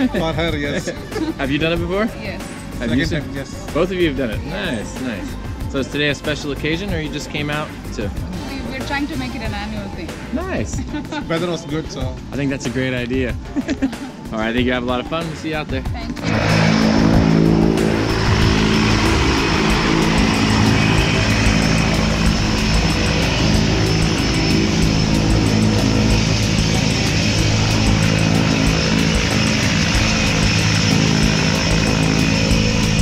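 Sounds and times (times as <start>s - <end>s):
background music: 0.0s - 33.0s
propeller engine running: 0.0s - 33.0s.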